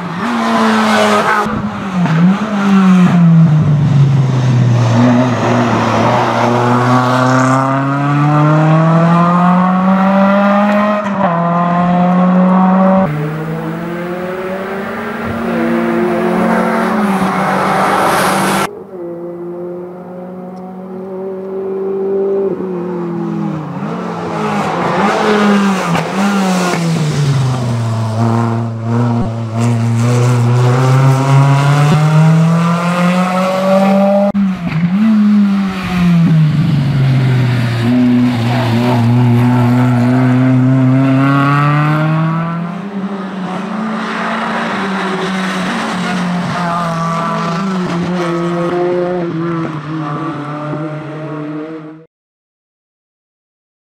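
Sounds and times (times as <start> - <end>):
car engine revving through gears: 0.0 - 52.1.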